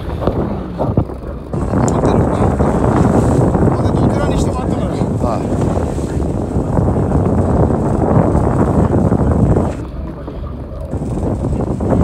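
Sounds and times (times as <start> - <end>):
sea and boat noise: 0.0 - 12.0
wind buffeting microphone: 0.0 - 12.0.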